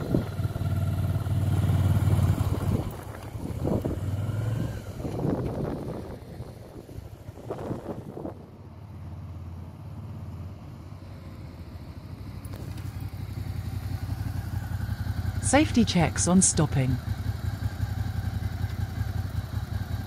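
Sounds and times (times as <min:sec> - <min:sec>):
motorcycle engine running: 0:00.0 - 0:08.6, 0:09.8 - 0:20.0.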